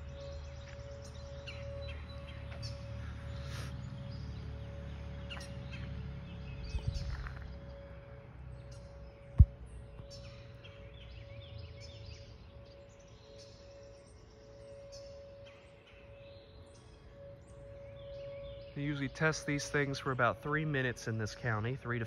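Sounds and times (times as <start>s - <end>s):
birds chirping: 0.0s - 22.0s
distant tornado sirens: 0.0s - 22.0s.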